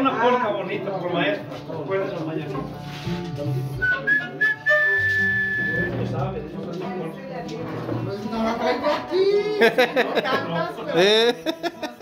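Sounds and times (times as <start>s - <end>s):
mariachi band playing: 0.0s - 12.0s
person whistling high notes: 3.8s - 6.0s.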